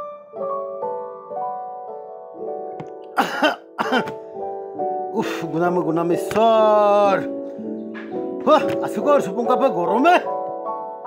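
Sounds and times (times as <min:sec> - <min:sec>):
soft keyboard music: 0:00.0 - 0:11.0
man coughing: 0:03.2 - 0:04.2.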